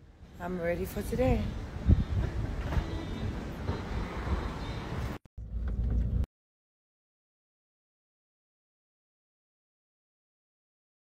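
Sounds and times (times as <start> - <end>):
low outdoor rumble: 5.0 - 6.3
car road rumble from inside: 5.4 - 6.3.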